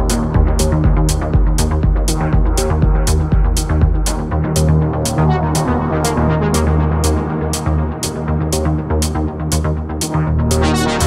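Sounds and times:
kick drum: 0.0s - 5.2s
bass line: 0.0s - 11.0s
electronic dance track: 0.0s - 11.0s
hi-hat: 0.0s - 11.0s.

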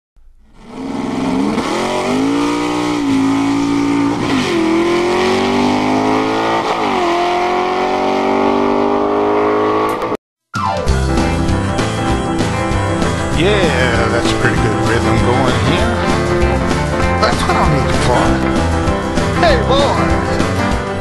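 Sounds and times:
race car engine accelerating: 0.5s - 10.2s, 11.8s - 21.0s.

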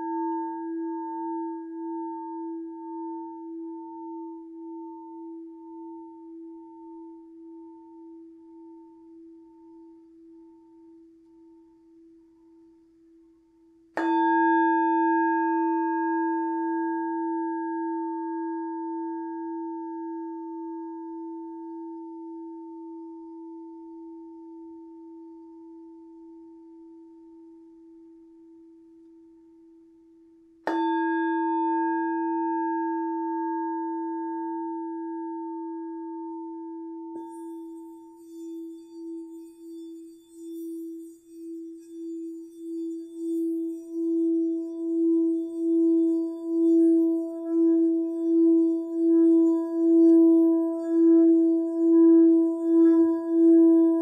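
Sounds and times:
singing bowl ringing: 0.0s - 10.9s, 14.0s - 22.3s, 30.7s - 35.4s, 37.0s - 54.0s
singing bowl struck: 14.0s - 17.3s, 37.2s - 54.0s.

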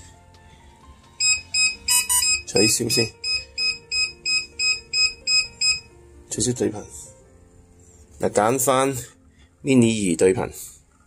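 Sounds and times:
rapid electronic beeping: 1.2s - 5.8s.

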